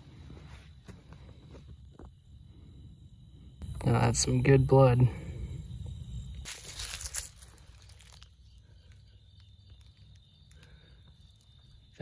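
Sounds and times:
footsteps in dry grass: 0:06.4 - 0:09.0.

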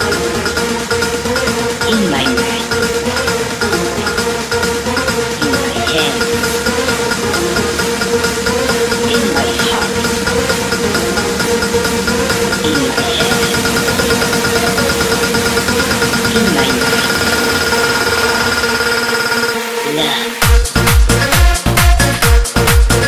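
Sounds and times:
bass: 0:00.0 - 0:18.9, 0:20.4 - 0:23.0
buzzing synth drone: 0:00.0 - 0:21.2
high synth tones: 0:01.8 - 0:03.0, 0:03.6 - 0:04.5, 0:05.4 - 0:20.4.

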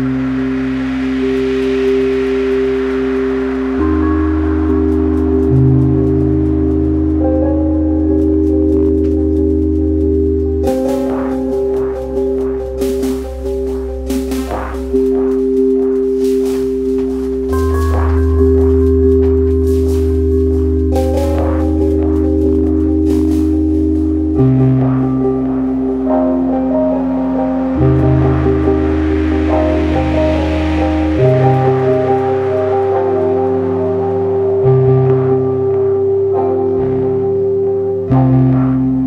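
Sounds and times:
sustained synth chords: 0:00.0 - 0:39.0
soft noise swells: 0:09.8 - 0:34.6.

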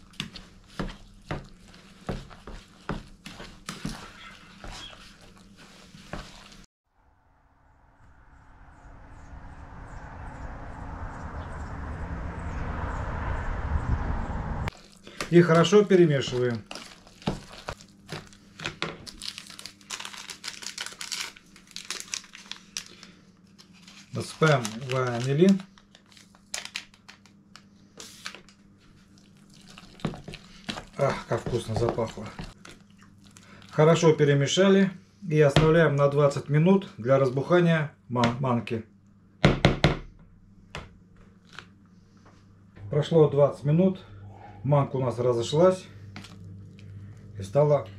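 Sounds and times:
paper sachet crinkling: 0:14.7 - 0:28.5.

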